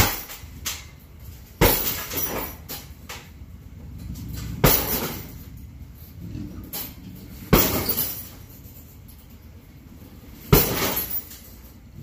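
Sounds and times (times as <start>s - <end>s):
kicks thudding on punching bag: 1.6s - 2.6s, 4.6s - 5.3s, 7.5s - 8.2s, 10.5s - 11.2s.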